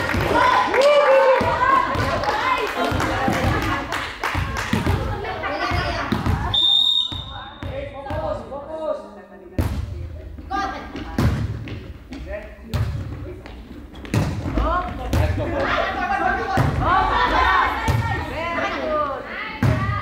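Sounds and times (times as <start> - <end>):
hands hitting volleyball: 1.4 - 6.5
referee's whistle: 6.5 - 7.6.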